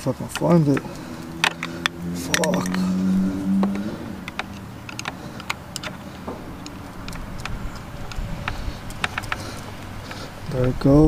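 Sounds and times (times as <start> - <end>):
plastic and metal clicks: 0.3 - 2.8, 3.6 - 11.0.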